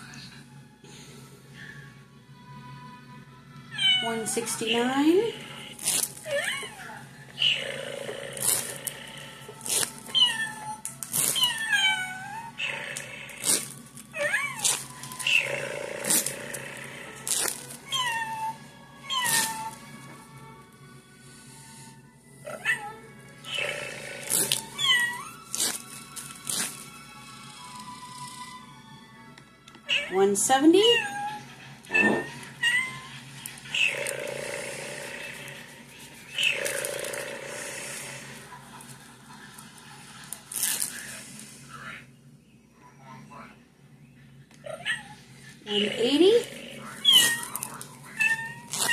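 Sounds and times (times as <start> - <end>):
cat meowing: 3.7 - 4.3, 10.1 - 10.8, 11.4 - 12.8, 17.9 - 19.7, 24.4 - 25.3, 30.9 - 33.1, 46.8 - 48.9.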